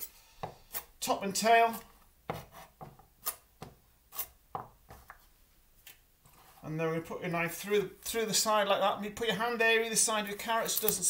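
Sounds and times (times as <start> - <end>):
knife chopping on board: 0.4 - 0.9, 2.3 - 3.0.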